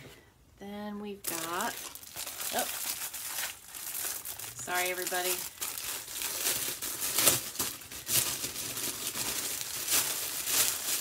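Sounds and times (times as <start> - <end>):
plastic wrapper crinkling: 1.2 - 11.0.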